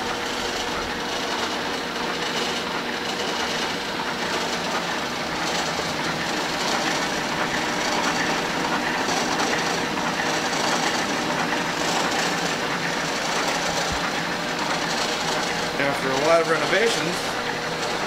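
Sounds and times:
dough sheeter machine running: 0:00.0 - 0:18.0.

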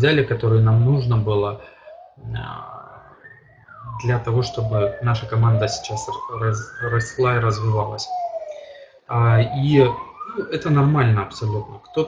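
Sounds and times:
emergency siren wailing: 0:00.0 - 0:12.0.

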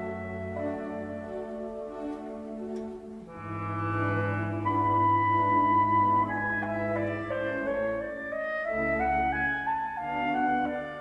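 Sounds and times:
music with sustained chords: 0:00.0 - 0:11.0.

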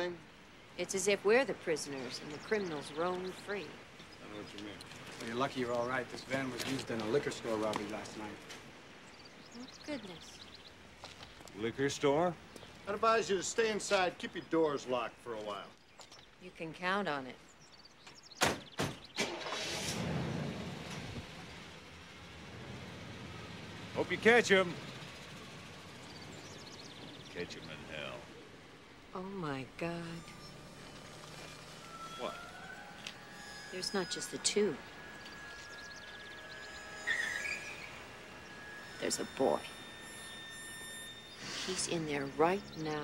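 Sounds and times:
car engine starting and running: 0:19.0 - 0:39.9
short high rising chirp: 0:30.1 - 0:42.8.

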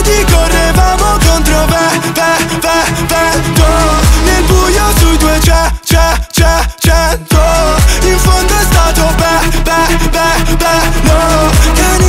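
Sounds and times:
electronic beat with deep kick: 0:00.0 - 0:12.0.

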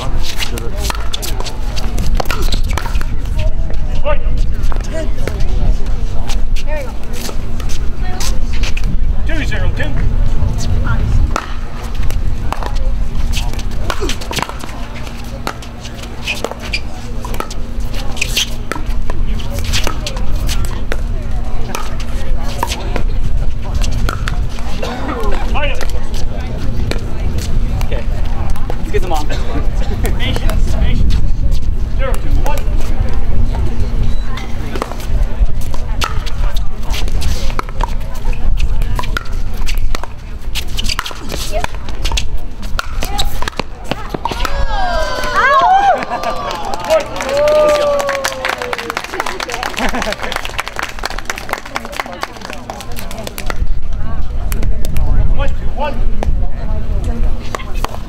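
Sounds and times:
steady low rumble: 0:00.0 - 0:58.0
voices in background: 0:00.0 - 0:58.0.

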